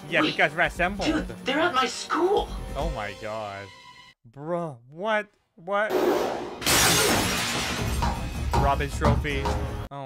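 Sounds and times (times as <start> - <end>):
background music: 0.0 - 4.2, 5.9 - 10.0
glass case shattering: 6.6 - 8.0.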